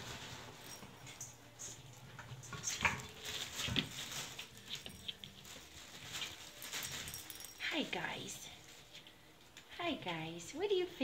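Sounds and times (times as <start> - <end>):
puppies pattering and scuffling: 0.0 - 10.4.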